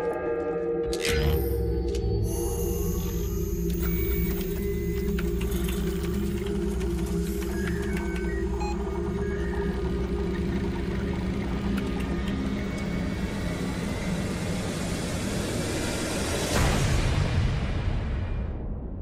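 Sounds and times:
computer equipment humming: 0:02.3 - 0:15.8
short electronic beeps and ticks: 0:07.0 - 0:10.4.

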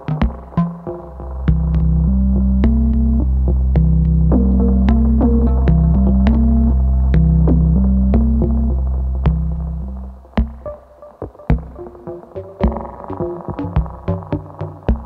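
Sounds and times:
deep synthesizer bass drone: 0:00.0 - 0:14.6
stepping synthesizer notes: 0:00.2 - 0:10.8.

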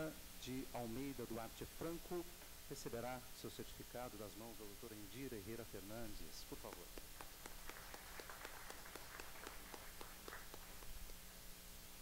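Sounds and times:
sparse applause: 0:07.2 - 0:11.0.

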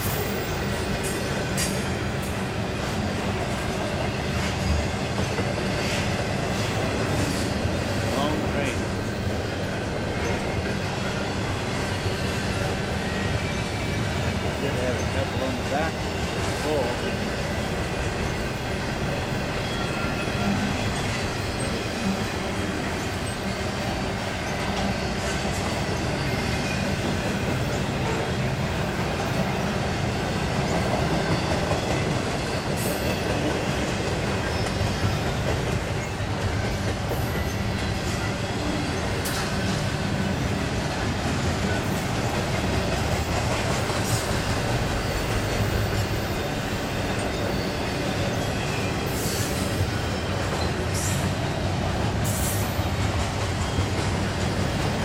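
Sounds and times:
freight train wheels rumbling: 0:00.0 - 0:55.0
high wheel squeals: 0:18.0 - 0:28.2, 0:34.4 - 0:40.5, 0:44.0 - 0:51.7.

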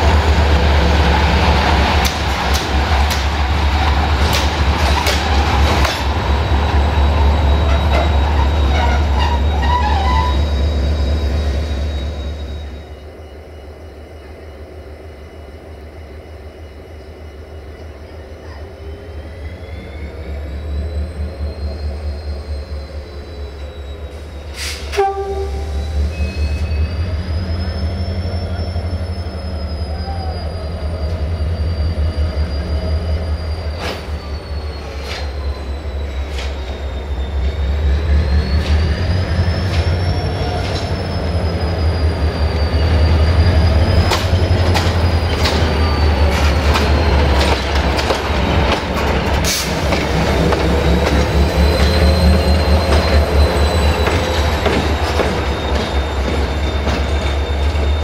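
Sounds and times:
wheels squealing on track: 0:06.4 - 0:13.0, 0:18.8 - 0:58.0.

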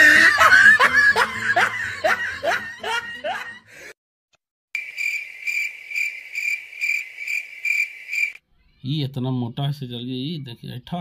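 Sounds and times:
cricket chirping: 0:04.8 - 0:08.4.

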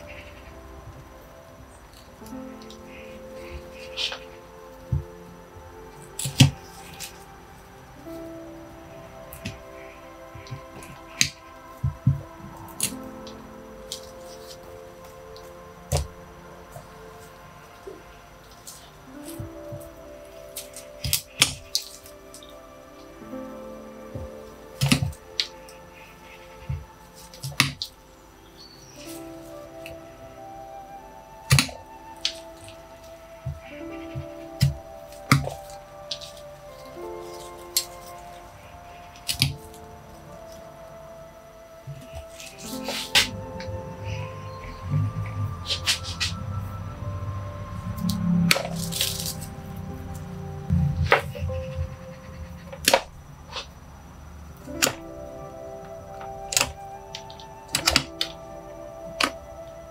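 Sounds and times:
soft background music: 0:00.0 - 0:59.9.

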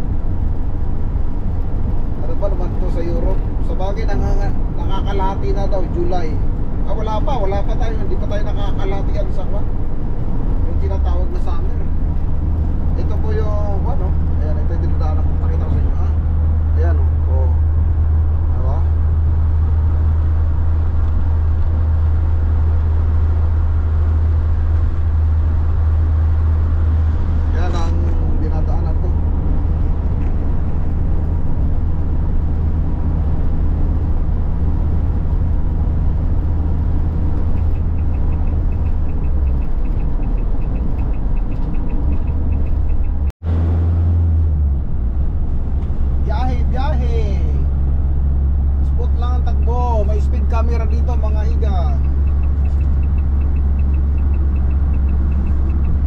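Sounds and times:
road noise: 0:00.0 - 0:56.0
van engine drone: 0:00.0 - 0:56.0.

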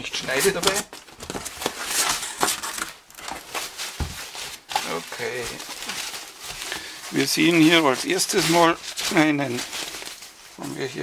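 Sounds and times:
plastic wrapping crinkling: 0:00.0 - 0:11.0
cardboard flaps scraping and rustling: 0:00.1 - 0:11.0.

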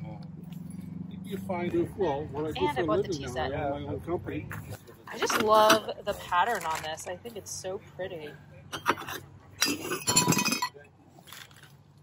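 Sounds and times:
porcelain saucers clinking: 0:08.7 - 0:10.8.

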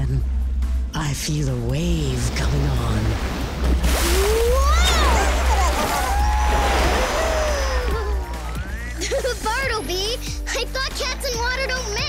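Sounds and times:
music with gliding tones: 0:01.6 - 0:12.0
cartoon wave rushing and splashing: 0:03.8 - 0:09.0.

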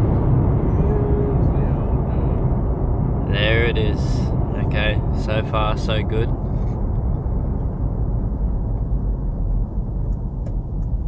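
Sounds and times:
road and engine rumble in a cab: 0:00.0 - 0:11.0.

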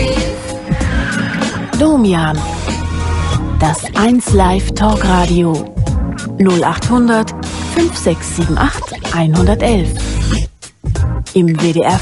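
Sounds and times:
radio intro jingle music: 0:00.0 - 0:11.2.

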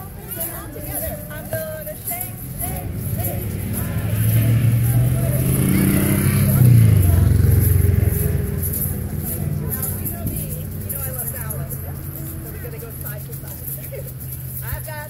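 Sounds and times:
egg shakers rattling: 0:00.0 - 0:15.0
vehicle engine rumble: 0:00.0 - 0:15.0.

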